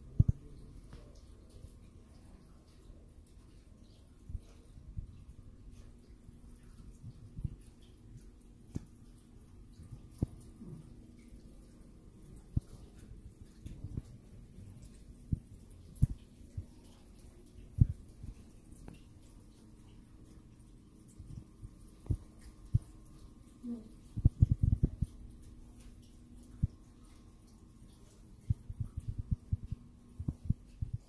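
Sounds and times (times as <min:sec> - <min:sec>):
faint room hum: 0:00.0 - 0:31.0.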